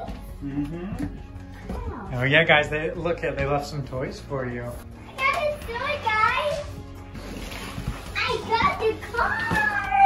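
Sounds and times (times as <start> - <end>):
children's voices playing: 8.1 - 10.0.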